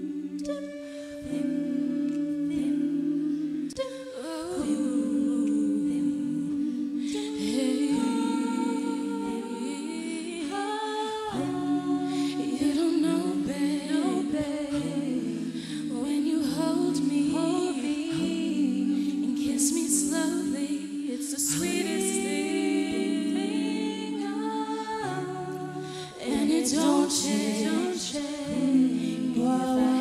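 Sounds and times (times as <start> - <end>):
women humming chords: 0.0 - 30.0.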